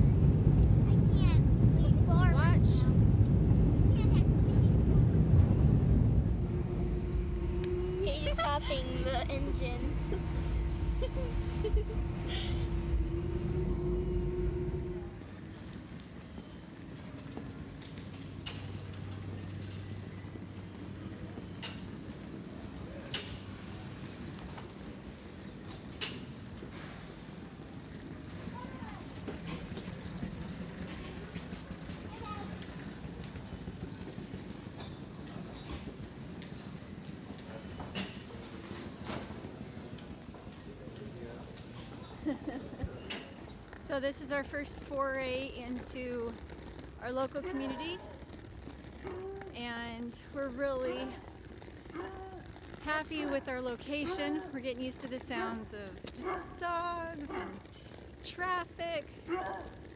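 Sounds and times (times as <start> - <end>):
airliner engine rumble: 0.0 - 54.6
indoor low hum: 0.0 - 59.9
suitcase wheels rattling: 23.9 - 42.2, 42.9 - 58.3.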